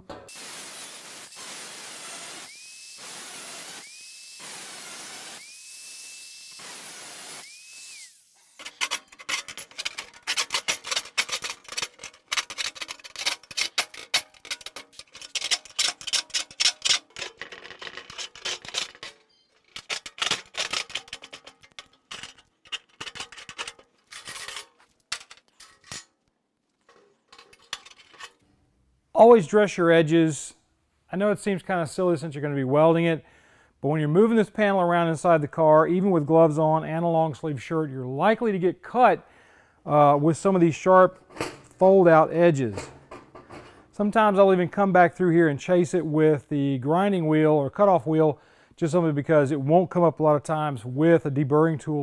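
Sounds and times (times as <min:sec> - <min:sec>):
angle grinder cutting steel: 0:00.3 - 0:24.6
deburring tool scraping metal: 0:08.3 - 0:26.1, 0:26.8 - 0:28.4.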